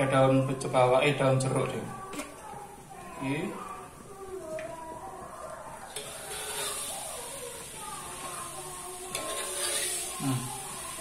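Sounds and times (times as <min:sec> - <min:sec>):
batter sizzling in hot oil: 0:02.8 - 0:11.0.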